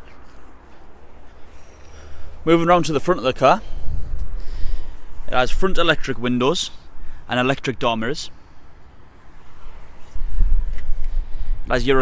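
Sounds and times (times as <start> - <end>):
low rumble on microphone: 0.0 - 7.2.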